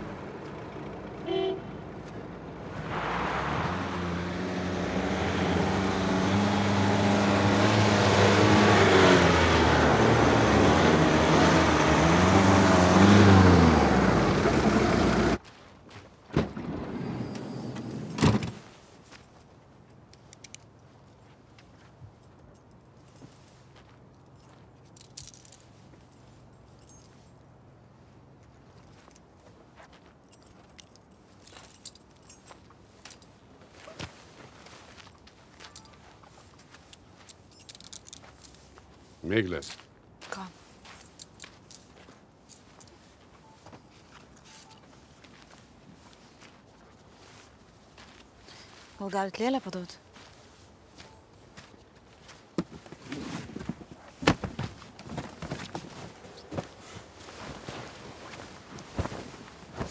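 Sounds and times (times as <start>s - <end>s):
van engine driving up: 0.0s - 15.4s, 16.4s - 18.7s
light clicks and rustles: 28.4s - 39.0s.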